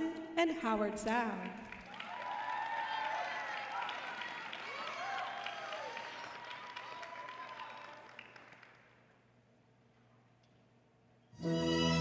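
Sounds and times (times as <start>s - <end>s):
audience applause: 1.6s - 9.0s.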